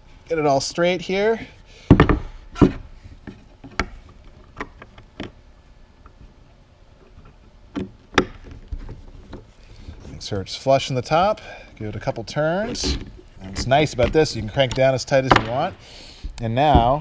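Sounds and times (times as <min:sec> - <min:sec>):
knocks of plywood parts handled: 0:01.8 - 0:05.4, 0:07.2 - 0:09.5, 0:12.7 - 0:17.0.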